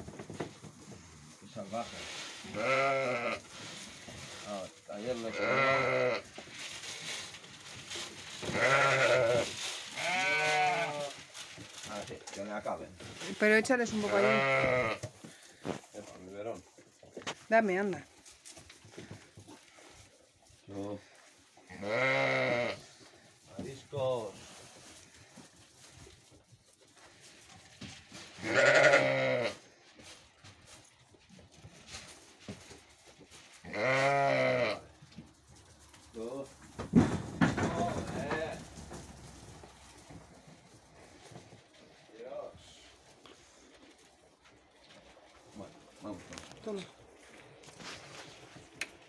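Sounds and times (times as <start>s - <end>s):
sheep bleating: 2.4s - 3.4s, 5.2s - 6.3s, 8.5s - 11.2s, 14.0s - 15.0s, 21.7s - 22.8s, 28.4s - 29.6s, 33.6s - 34.9s.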